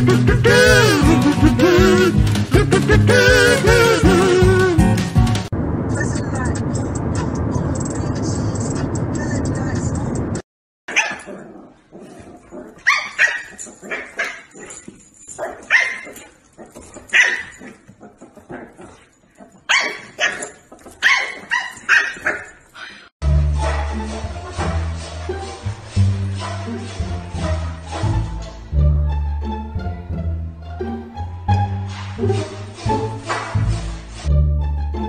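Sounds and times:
puppy barking and yipping: 10.9s - 23.0s.

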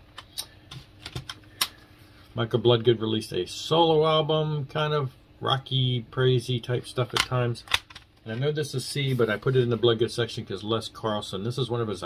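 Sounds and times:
plastic cd cases clicking: 7.2s - 8.1s.

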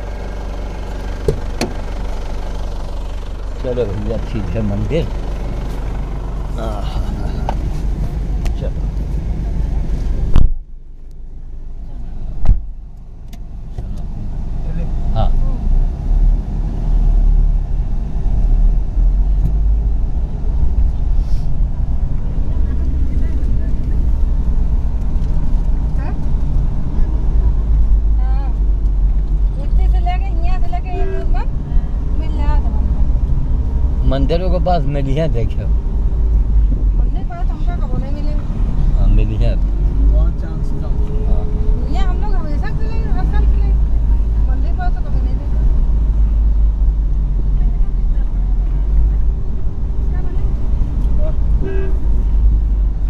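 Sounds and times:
car engine and road rumble: 0.0s - 53.0s
car doors slamming: 1.2s - 1.9s.

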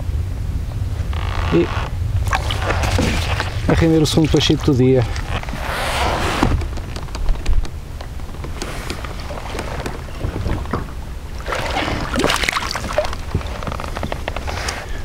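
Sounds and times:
water and wind rumble: 0.0s - 15.0s
gear knocking on kayak hull: 6.4s - 11.0s.

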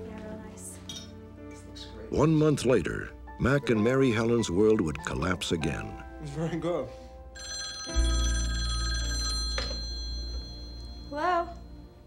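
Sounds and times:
telephone bell ringing: 7.4s - 12.0s.

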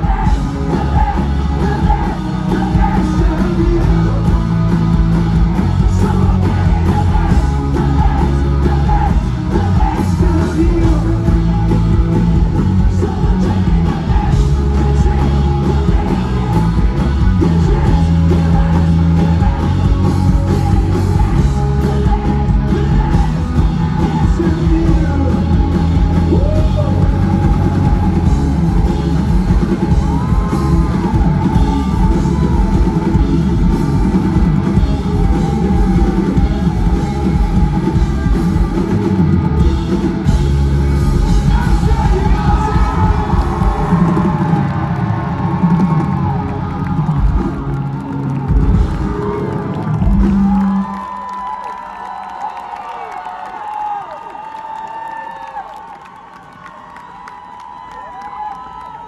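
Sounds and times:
drum kit: 0.0s - 51.1s
live rock band playing: 0.0s - 51.1s
bass guitar: 0.0s - 51.6s
electric guitar: 0.0s - 51.8s
crowd cheering and whooping: 0.0s - 59.0s.

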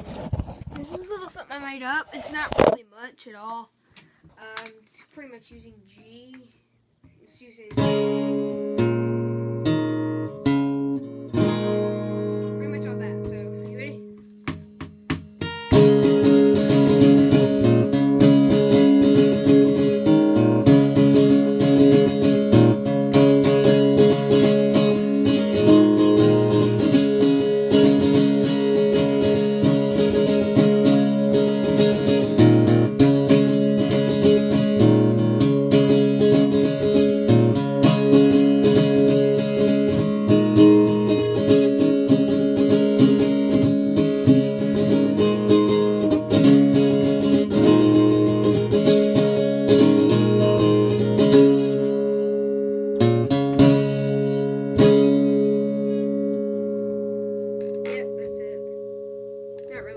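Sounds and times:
acoustic guitar strumming: 0.0s - 3.6s, 7.3s - 59.9s.

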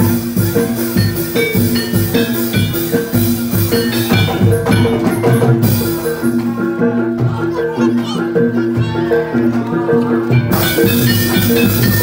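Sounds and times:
drums: 0.0s - 12.0s
repeating metallophone notes: 0.0s - 12.0s.

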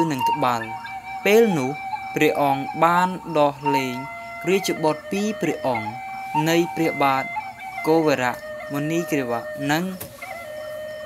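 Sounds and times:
man reciting verses: 0.0s - 10.0s
soft background music: 0.0s - 11.0s.

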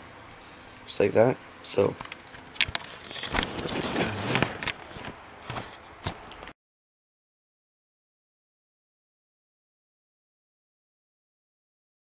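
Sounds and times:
camera handling rustle and knocks: 2.0s - 6.5s.

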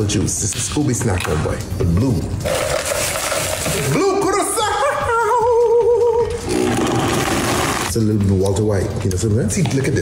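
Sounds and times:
blender crushing ice: 6.5s - 7.9s.

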